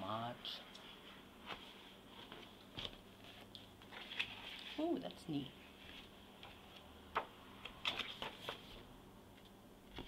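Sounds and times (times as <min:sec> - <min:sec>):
paper pages turning: 0:02.8 - 0:04.8, 0:06.7 - 0:08.8.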